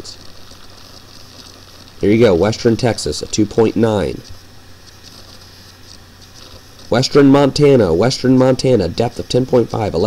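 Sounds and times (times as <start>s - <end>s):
faint hum: 0.0s - 10.0s
microphone hiss: 0.0s - 10.0s.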